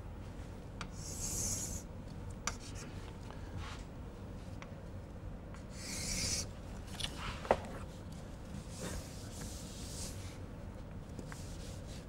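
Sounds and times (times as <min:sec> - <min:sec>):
chalk scraping on chalkboard: 0:01.0 - 0:01.8.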